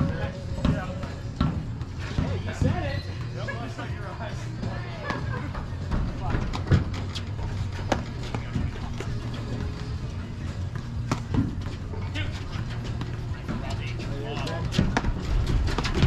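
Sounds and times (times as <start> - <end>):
paddles hitting ball: 10.7 - 11.8.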